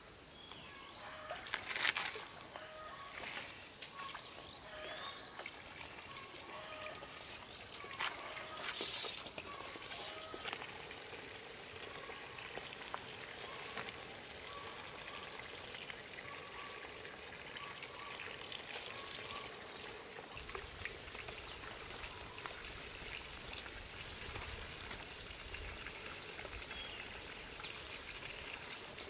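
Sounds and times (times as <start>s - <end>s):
steady high hiss: 0.0s - 29.0s.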